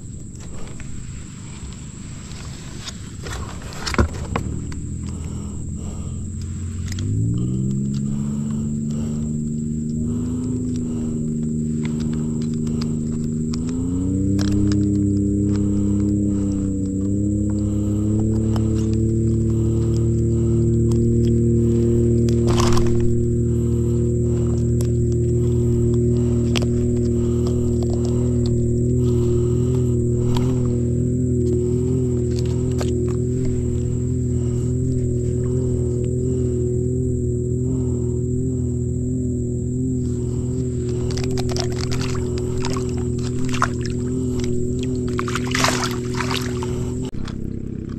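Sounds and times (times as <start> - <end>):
motor drone: 0.0 - 47.9
light clicks: 6.2 - 23.2.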